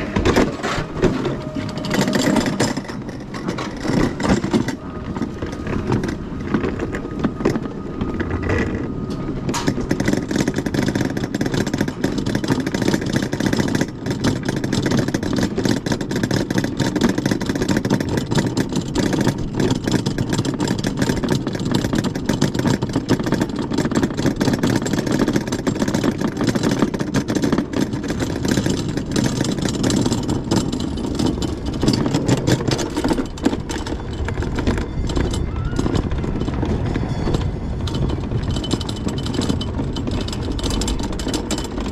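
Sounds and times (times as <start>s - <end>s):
rattles and knocks: 0.0s - 41.9s
sled rumbling on metal track: 0.0s - 41.9s.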